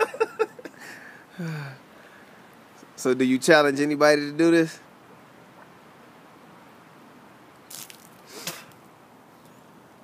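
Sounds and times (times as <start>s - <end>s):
man breathing sharply: 0.8s - 2.5s.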